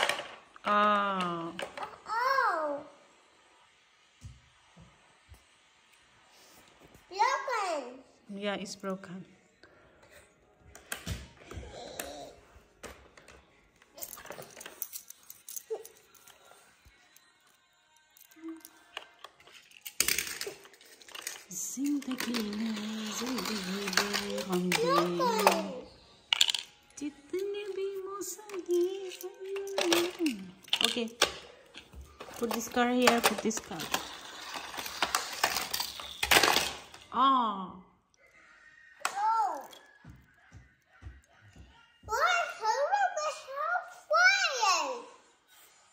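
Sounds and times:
toy cars clattering on plastic: 0.0s - 2.4s, 12.8s - 16.5s, 18.1s - 26.9s, 28.2s - 37.1s.

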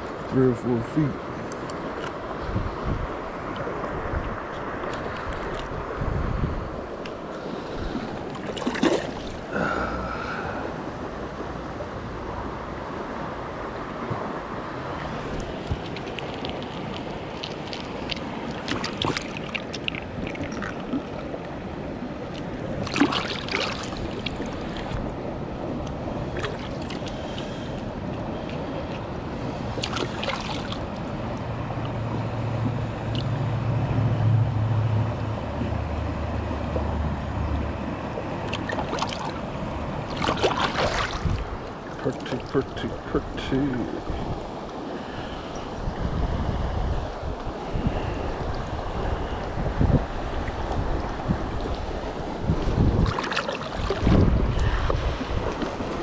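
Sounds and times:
creek water gurgling: 0.0s - 56.0s
sharp knocks or splashes: 8.5s - 9.4s, 17.4s - 20.8s, 22.8s - 24.9s, 40.1s - 42.5s, 53.0s - 55.9s
low rumble: 31.4s - 37.9s.

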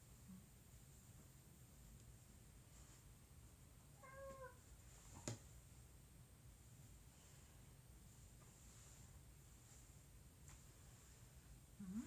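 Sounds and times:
cat meowing: 4.0s - 4.6s.

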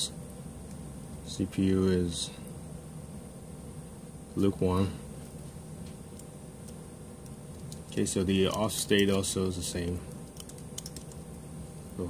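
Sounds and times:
low room noise: 0.0s - 12.0s
computer keyboard clicks: 10.2s - 11.2s.

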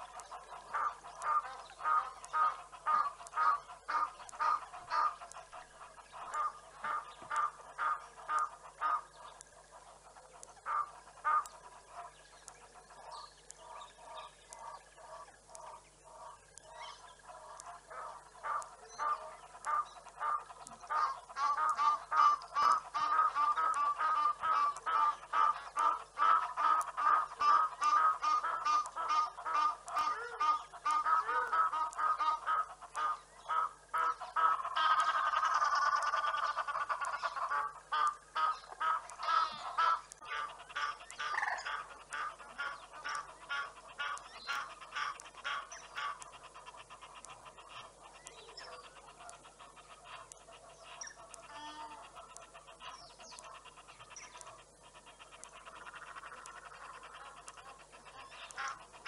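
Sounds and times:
birds calling harshly: 0.0s - 59.0s.

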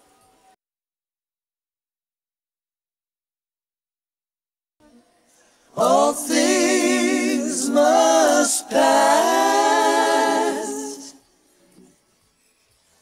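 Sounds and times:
voices singing held notes in harmony: 5.7s - 11.4s.

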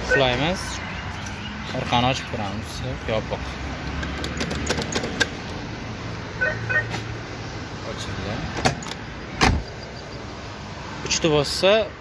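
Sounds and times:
loud thump: 9.4s - 9.7s.

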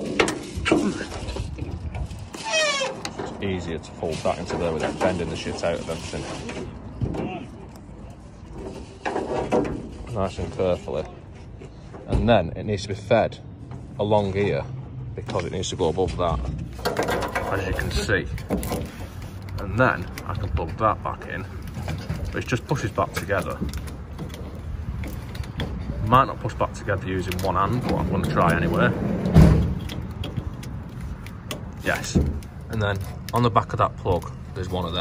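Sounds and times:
rubber conduit rubbing and scuffing: 0.0s - 12.1s, 15.3s - 35.0s.

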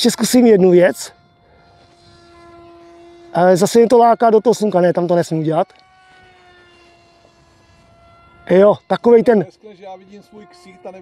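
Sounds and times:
model plane motor whine: 0.0s - 11.0s.

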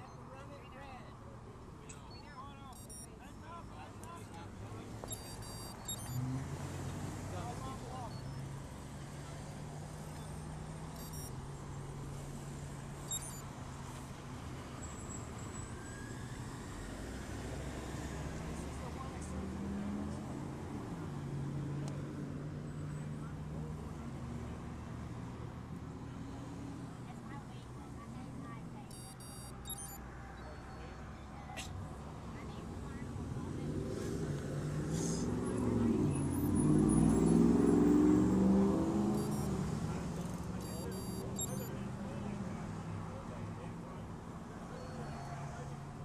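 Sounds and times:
cars driving by: 0.0s - 46.0s.

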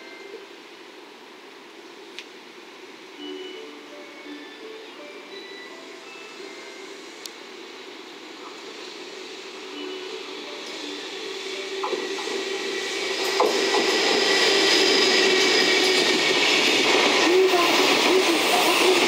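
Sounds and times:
train rumble: 0.2s - 19.0s.

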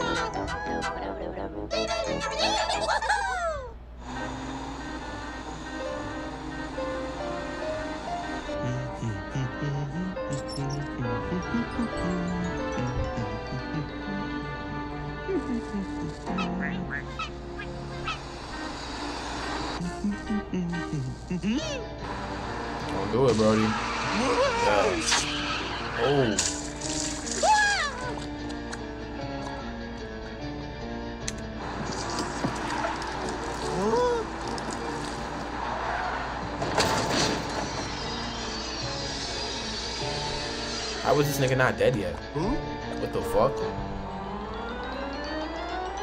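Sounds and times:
light background music: 0.0s - 3.0s, 4.3s - 46.0s
cartoon character wordless voice: 0.0s - 3.8s, 8.6s - 14.3s, 19.8s - 22.0s
cartoon car engine and road noise: 0.0s - 46.0s
steady low hum: 3.4s - 16.4s.

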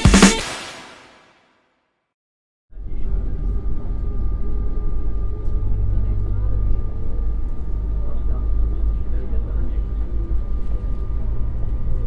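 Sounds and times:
road vehicle rumble from inside: 2.7s - 12.0s.

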